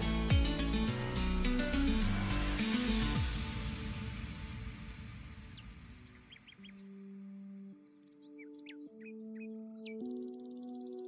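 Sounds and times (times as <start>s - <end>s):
soft ambient music chords: 0.0s - 11.0s
bird chirps: 5.1s - 11.0s.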